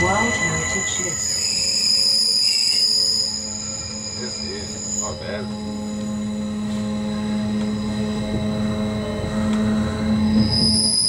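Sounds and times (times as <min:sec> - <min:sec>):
electric train drive hum: 0:00.0 - 0:11.0
wheel squeal on rails: 0:00.0 - 0:11.0.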